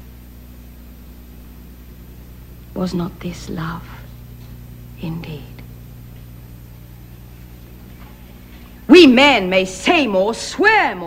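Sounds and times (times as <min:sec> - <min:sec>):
low steady hum: 0:00.0 - 0:11.0
woman reciting verse: 0:02.8 - 0:04.2, 0:05.0 - 0:05.7, 0:08.9 - 0:11.0.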